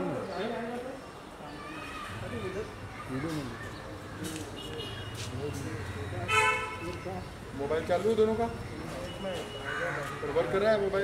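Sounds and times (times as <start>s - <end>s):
background murmur: 0.0s - 11.0s
men talking: 0.0s - 11.0s.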